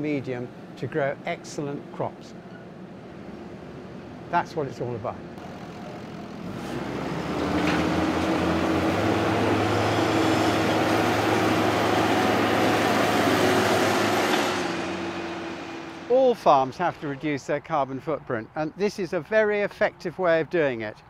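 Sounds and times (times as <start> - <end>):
tractor diesel engine running: 5.2 - 17.2.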